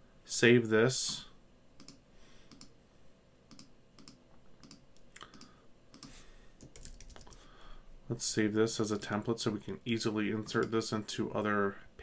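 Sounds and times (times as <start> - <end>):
computer keyboard typing: 3.5 - 7.4.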